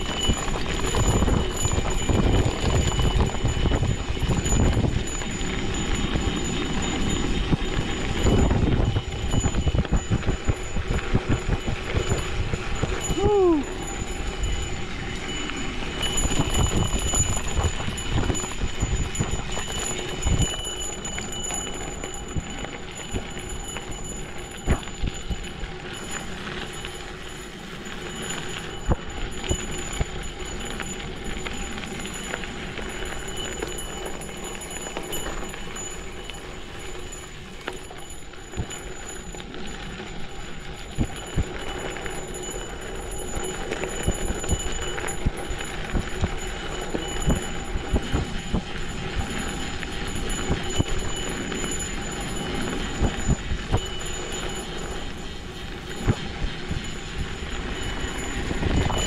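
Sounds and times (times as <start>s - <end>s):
bike tyres crunching on gravel: 0.0s - 59.0s.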